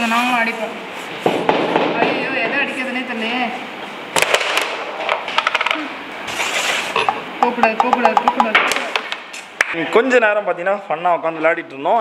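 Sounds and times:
wooden pieces clacking on board: 4.2s - 5.8s.

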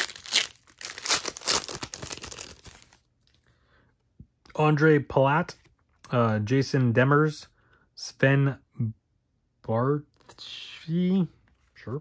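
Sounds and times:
foil wrapper tearing and crinkling: 0.0s - 3.0s.

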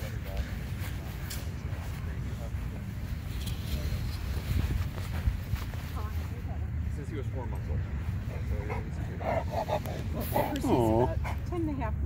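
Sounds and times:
people talking: 5.9s - 12.0s.

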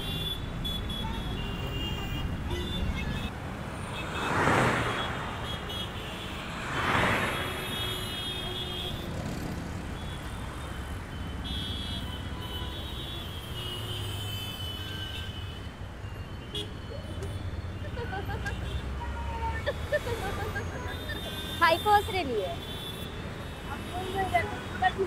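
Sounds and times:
vehicles passing close by: 0.0s - 12.6s, 15.7s - 25.0s
city road traffic: 0.0s - 25.0s.

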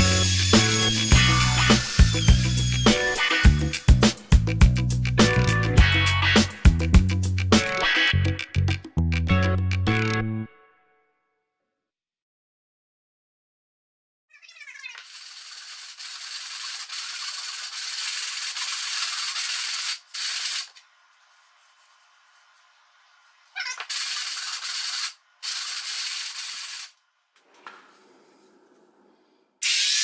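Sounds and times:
wood being worked hissing: 0.0s - 5.3s, 15.0s - 22.8s, 23.9s - 30.0s.

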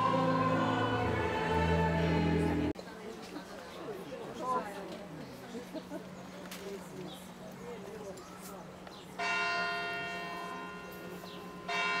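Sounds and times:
church bell ringing: 9.2s - 12.0s.

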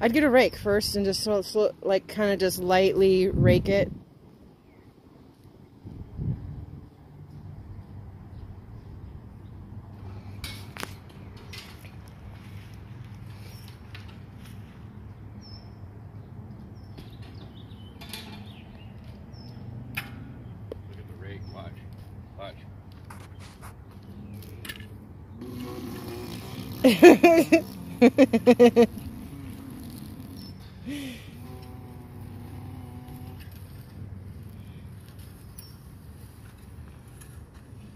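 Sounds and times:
person laughing: 26.5s - 29.0s, 30.8s - 31.4s.

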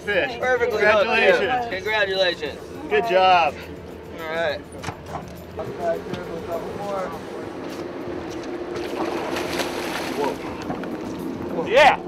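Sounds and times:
boat engine humming: 0.0s - 12.0s
fish splashing at hull: 8.6s - 11.2s.

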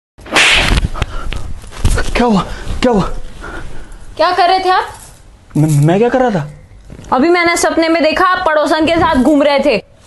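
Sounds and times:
loud swish: 0.2s - 1.0s.

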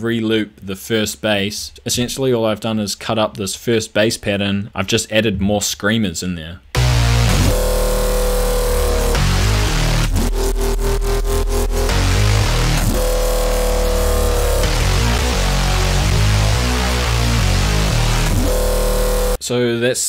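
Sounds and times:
deep sub bass: 6.8s - 19.4s
distorted screamer bass: 6.8s - 19.4s
drum and bass drums: 6.8s - 19.4s.

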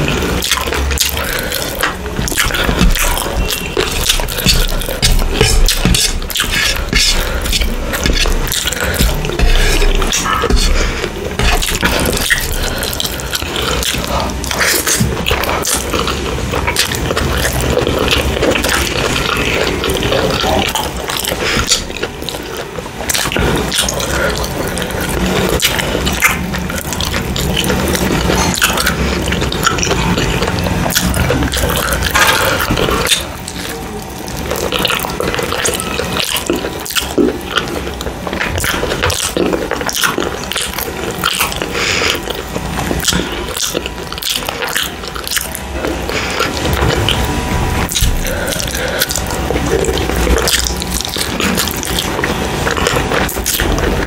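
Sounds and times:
wet chewing and smacking: 0.0s - 54.0s.

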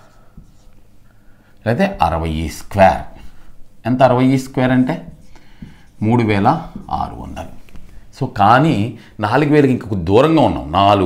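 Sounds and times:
man speaking: 1.6s - 5.2s, 5.9s - 11.0s
marker scratching on whiteboard: 4.1s - 8.1s.

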